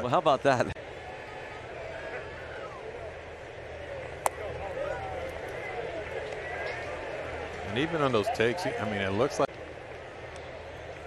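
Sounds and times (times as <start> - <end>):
crowd murmur: 0.8 - 11.0
distant voices: 0.8 - 11.0.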